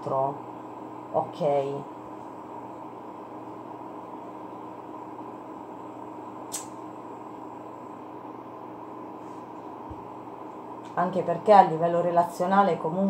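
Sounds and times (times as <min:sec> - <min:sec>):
room hum: 0:00.0 - 0:13.0
short sharp click: 0:06.5 - 0:06.8.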